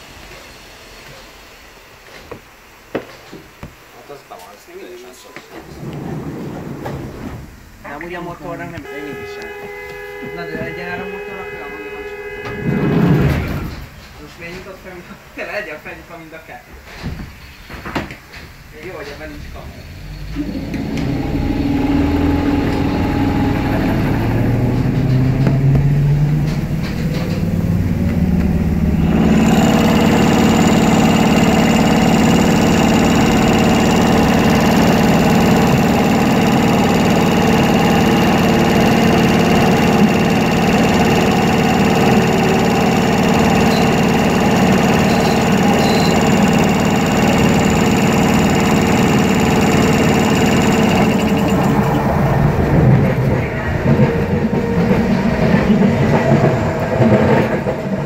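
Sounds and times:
electric train motor whine: 8.5s - 14.0s, 19.5s - 58.0s.

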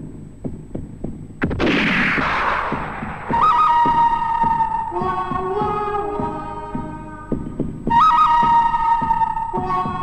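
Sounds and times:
low heartbeat thumps: 0.0s - 10.0s
sharp crack: 1.4s - 3.6s.

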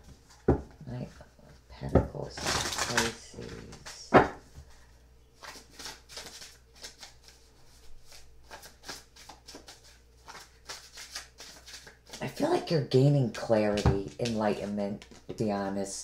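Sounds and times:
cards snapping while shuffled: 5.4s - 7.4s, 8.0s - 12.2s.

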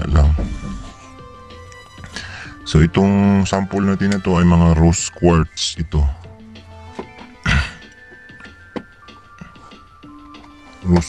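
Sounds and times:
background music with held tones: 0.0s - 11.0s
loud dull thunk: 0.2s - 1.0s.

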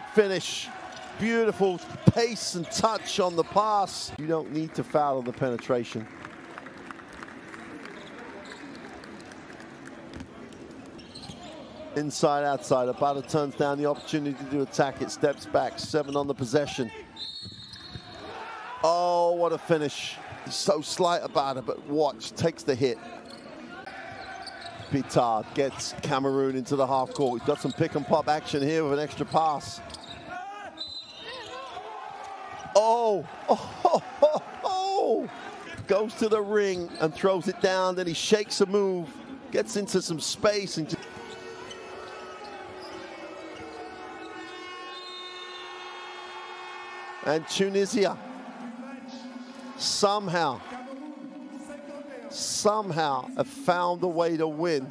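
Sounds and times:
crowd noise: 0.0s - 54.9s
referee's whistle blast: 17.1s - 18.3s, 29.9s - 31.8s, 44.6s - 46.0s.

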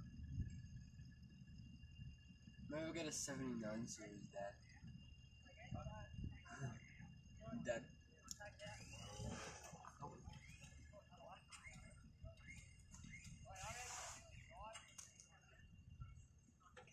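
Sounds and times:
low steady rumble: 0.0s - 16.9s
quiet indistinct talking: 0.0s - 16.9s.

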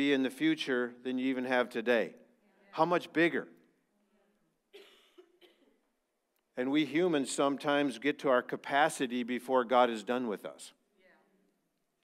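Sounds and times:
faint cough: 4.7s - 5.8s.

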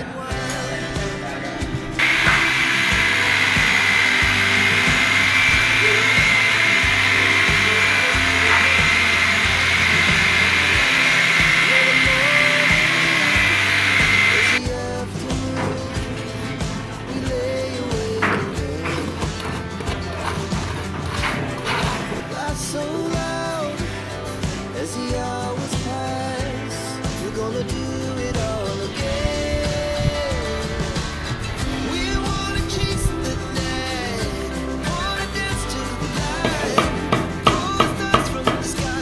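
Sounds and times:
background music: 0.0s - 39.0s
electric drill whining: 2.0s - 14.6s.

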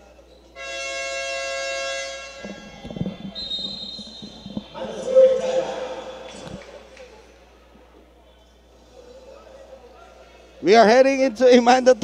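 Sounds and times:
arena horn buzzing tone: 0.6s - 4.8s
referee's whistle blast: 3.3s - 6.4s.

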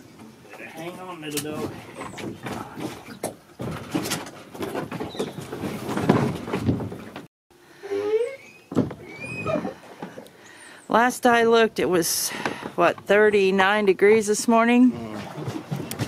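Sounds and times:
knocks and scraping on plastic boat: 0.0s - 7.3s, 14.7s - 16.0s.

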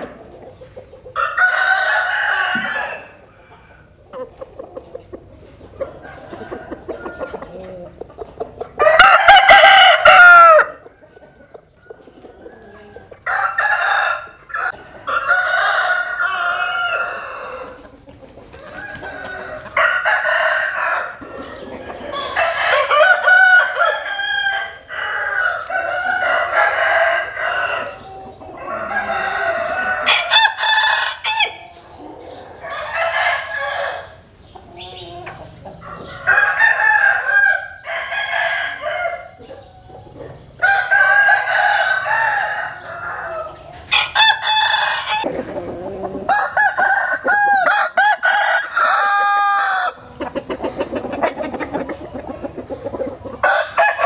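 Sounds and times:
roosters crowing: 0.0s - 4.8s, 5.5s - 54.0s.

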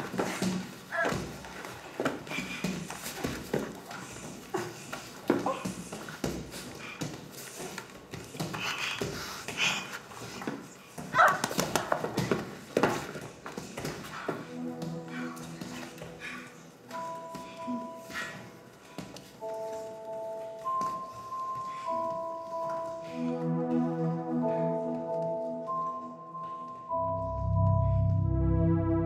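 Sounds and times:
music with soft sustained notes: 13.6s - 29.0s.

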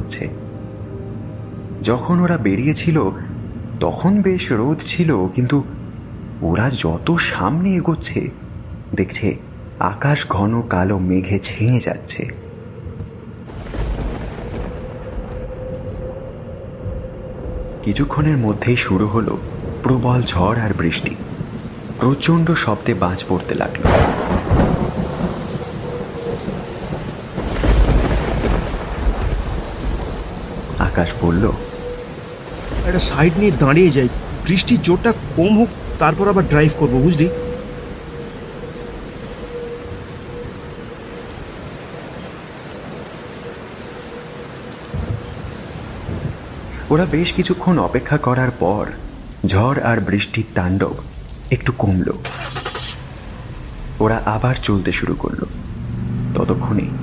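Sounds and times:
heavy rain: 0.0s - 57.0s
deep rolling thunder rumble: 11.8s - 51.8s
thunder crack: 13.5s - 16.1s, 19.2s - 37.8s.

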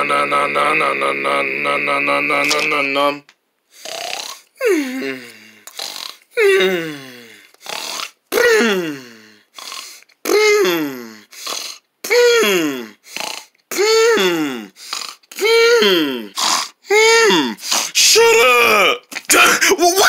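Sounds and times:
person vocalizing drawn-out dun: 0.0s - 3.2s, 6.4s - 7.2s, 15.4s - 19.0s.

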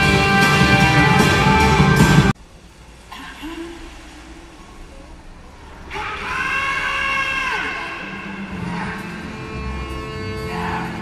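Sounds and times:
live band music: 0.0s - 2.3s.

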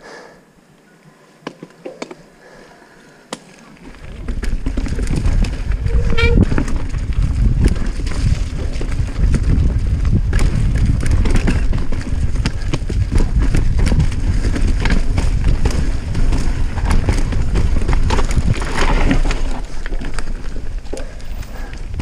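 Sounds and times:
bike clicks and rattles: 3.3s - 22.0s
tyres rumbling over dirt trail: 3.6s - 22.0s.

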